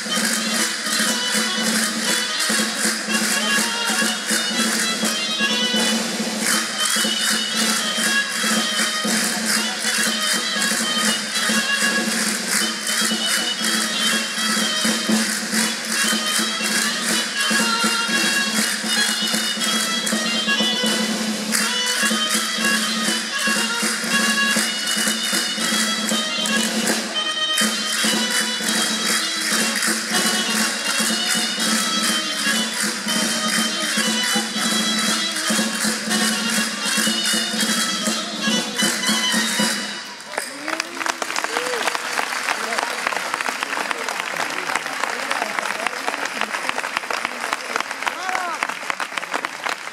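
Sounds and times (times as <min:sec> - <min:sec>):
live folk dance music: 0:00.0 - 0:49.9
audience applause: 0:40.2 - 0:49.9.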